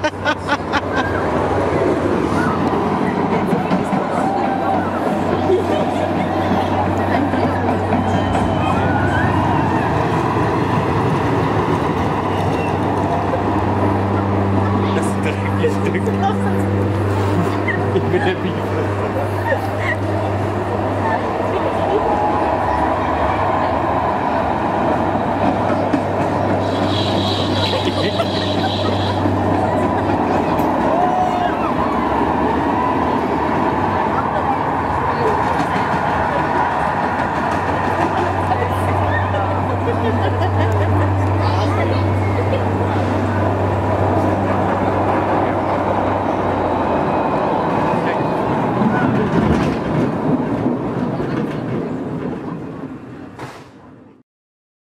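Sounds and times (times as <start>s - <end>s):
roller coaster rumbling on track: 0.0s - 54.2s.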